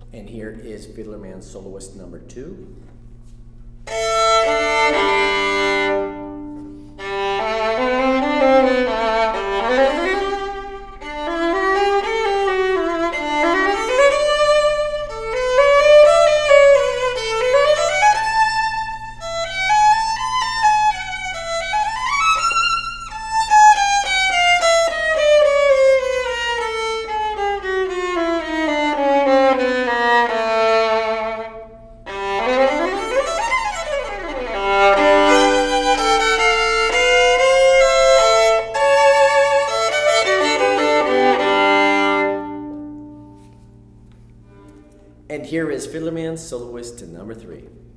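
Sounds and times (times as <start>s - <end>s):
solo violin played with bow: 3.2s - 45.3s.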